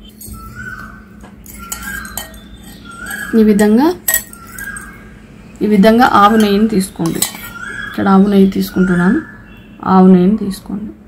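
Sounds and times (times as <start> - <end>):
steady low hum: 0.0 - 11.0
steel bowl and spoon clinking: 1.4 - 5.0, 6.3 - 7.6.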